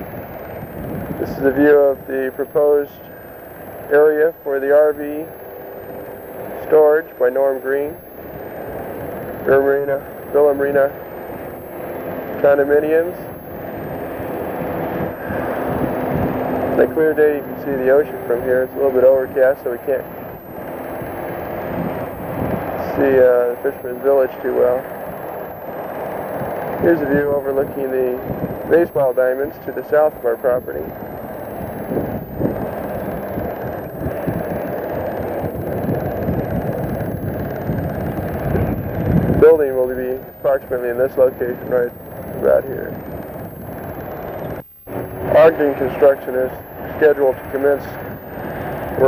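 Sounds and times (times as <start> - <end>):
wind buffeting a microphone: 0.0 - 4.0, 8.0 - 49.0
faint steady hum: 0.0 - 49.0
low engine rumble: 0.0 - 49.0.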